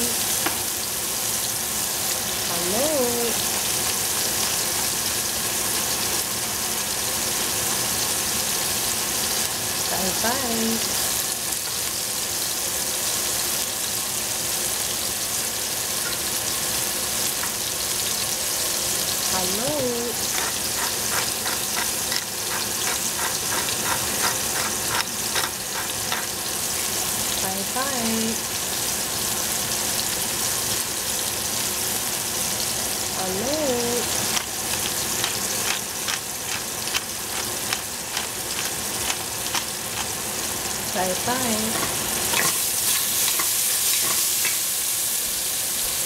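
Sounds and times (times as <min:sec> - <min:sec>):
mushrooms sizzling in a pot: 0:00.0 - 0:46.0
pepper mill grinding clicks: 0:20.3 - 0:26.3, 0:34.3 - 0:40.1.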